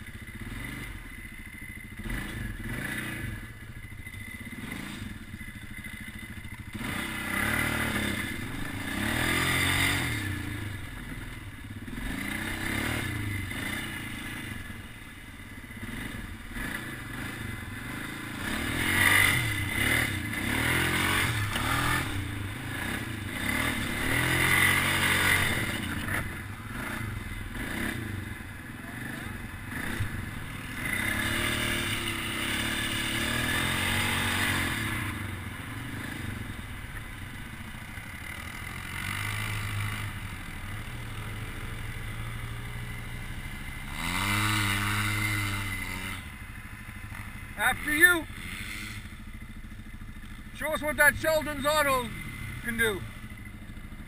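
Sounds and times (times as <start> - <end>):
quad bike engine revving: 0.0 - 54.0.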